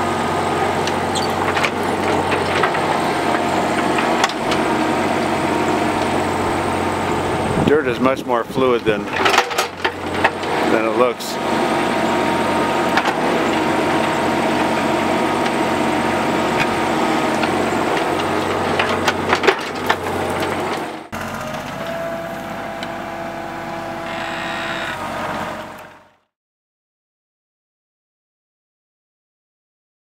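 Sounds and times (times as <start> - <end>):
diesel engine running: 0.0 - 26.3
machine hum with faint whine: 21.9 - 26.2.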